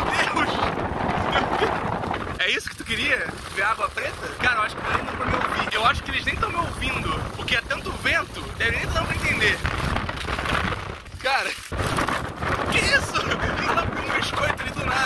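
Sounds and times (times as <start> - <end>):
man talking: 0.0 - 1.8, 2.4 - 9.7, 11.2 - 11.6, 12.6 - 15.0
wind buffeting microphone: 0.0 - 15.0.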